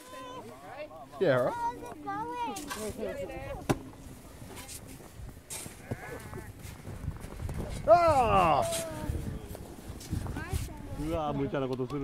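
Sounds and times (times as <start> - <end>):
crunch of snow: 4.0 - 11.0.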